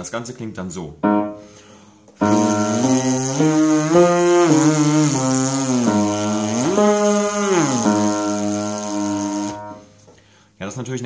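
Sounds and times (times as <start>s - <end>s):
brass lip buzz: 1.2s - 10.0s.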